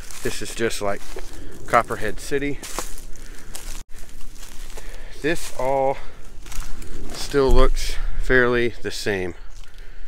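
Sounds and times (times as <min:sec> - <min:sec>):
footsteps in undergrowth: 0:00.0 - 0:08.3, 0:09.3 - 0:10.0.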